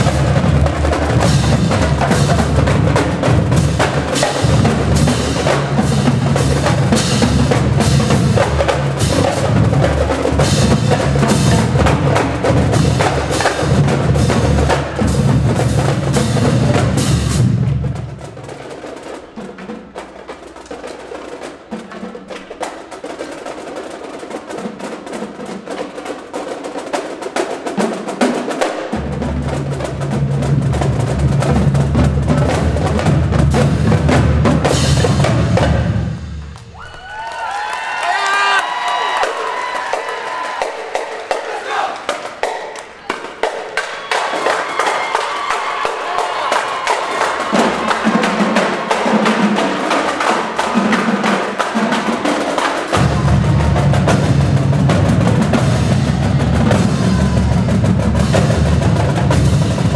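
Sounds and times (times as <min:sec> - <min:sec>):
marching drumline: 0:00.0 - 0:59.9
crowd shouting and cheering: 0:36.3 - 0:58.5.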